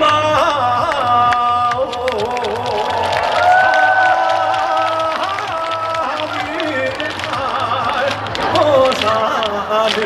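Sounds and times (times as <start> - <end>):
man singing with vibrato: 0.0 - 3.1, 4.7 - 10.0
crowd clapping along: 0.0 - 10.0.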